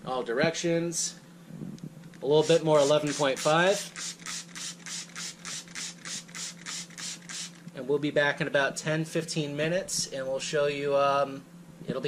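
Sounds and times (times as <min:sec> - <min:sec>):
spray bottle spraying water: 0:02.3 - 0:07.6.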